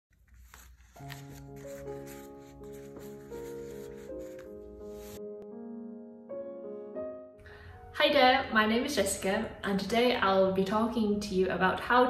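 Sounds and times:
paper rustling: 0.1s - 5.2s
background music with held notes: 0.4s - 9.4s.

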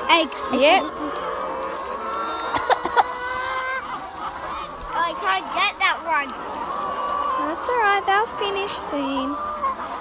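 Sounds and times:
hens clucking and calling: 0.0s - 10.0s
hens squawking: 0.0s - 10.0s.

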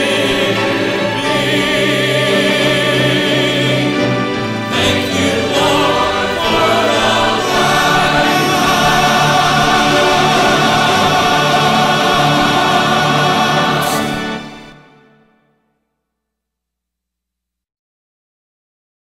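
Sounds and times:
choir singing gospel: 0.0s - 15.2s.

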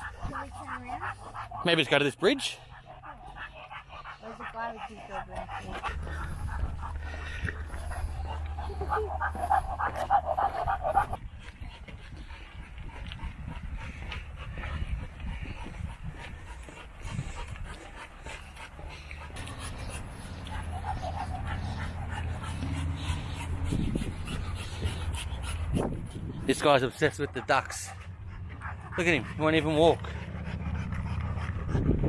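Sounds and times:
dog panting: 0.0s - 32.0s
steady low rumble: 0.0s - 32.0s.

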